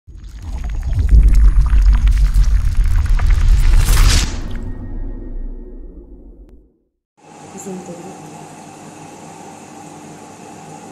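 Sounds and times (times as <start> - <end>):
deep rumble: 0.2 - 6.8
rushing whoosh: 1.1 - 6.6.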